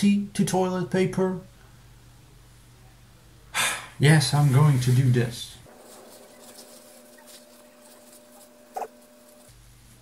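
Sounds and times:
faint steady hum: 0.0s - 10.0s
toilet paper crinkling: 5.7s - 10.0s.

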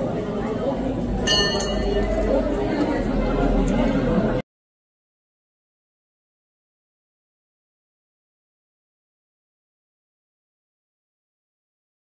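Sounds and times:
crowd chatter: 0.0s - 4.4s
brief metallic ring: 1.3s - 2.1s.

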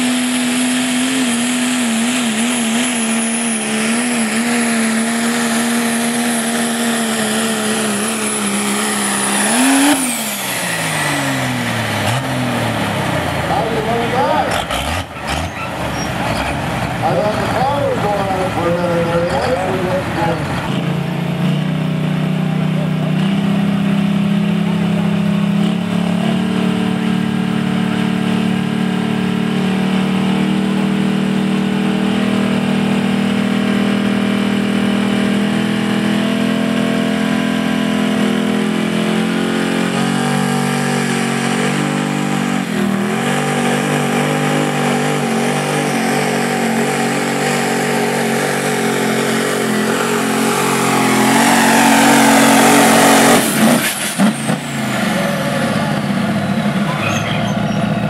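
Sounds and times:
diesel truck engine revving: 0.0s - 58.0s.

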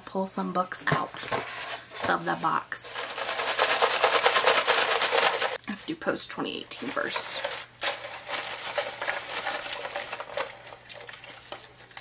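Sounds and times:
paper slips rattling in a box: 2.9s - 5.6s, 6.8s - 12.0s.

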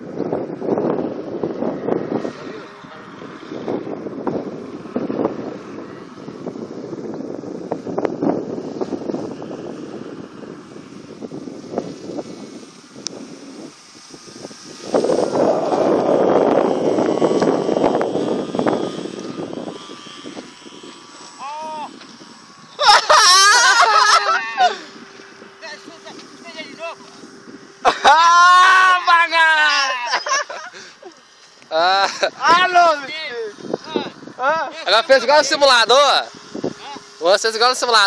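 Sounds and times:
model airplane motor droning: 0.0s - 38.0s
wind buffeting microphone: 0.0s - 38.0s.

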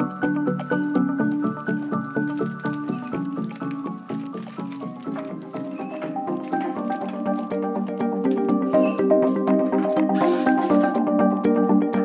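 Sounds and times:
background music with short notes: 0.0s - 12.0s.

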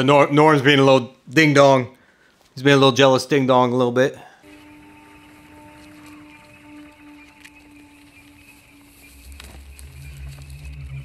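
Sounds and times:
quiet film score: 0.0s - 11.0s
low rumbling: 4.4s - 11.0s.

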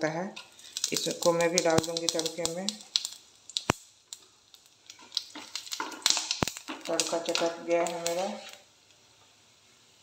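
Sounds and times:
spices crackling in hot oil: 0.0s - 10.0s.

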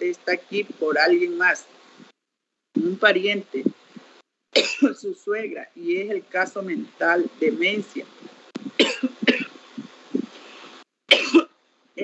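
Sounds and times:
person coughing: 4.6s - 5.0s, 8.8s - 9.5s, 11.1s - 11.5s.

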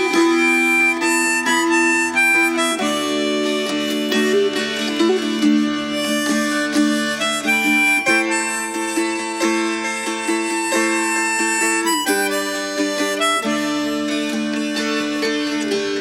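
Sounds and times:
harmonica melody: 0.0s - 16.0s
plucked acoustic strings: 0.0s - 16.0s.

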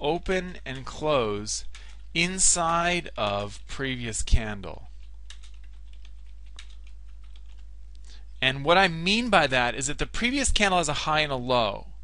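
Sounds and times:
steady low hum: 0.0s - 12.0s
computer keyboard typing: 1.6s - 2.1s, 4.9s - 7.7s.

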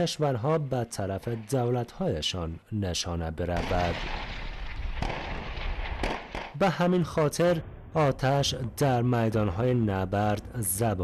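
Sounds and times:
artillery guns firing: 3.5s - 6.7s
sharp gun report: 3.5s - 8.4s.

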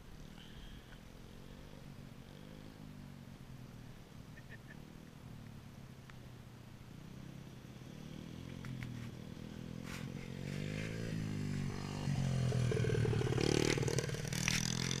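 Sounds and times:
dirt bike engine revving: 7.8s - 15.0s.

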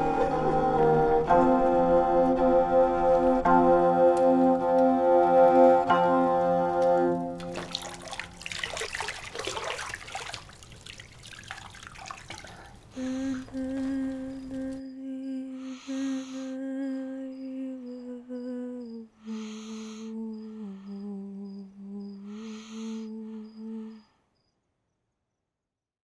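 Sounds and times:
breaths: 12.3s - 14.6s, 15.6s - 16.6s, 19.2s - 21.1s, 22.1s - 24.3s
woman humming a lullaby: 13.0s - 24.1s.

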